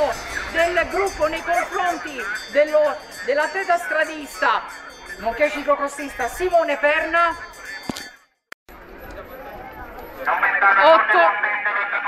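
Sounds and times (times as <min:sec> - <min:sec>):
man announcing over loudspeaker: 0:00.0 - 0:07.6, 0:10.2 - 0:12.0.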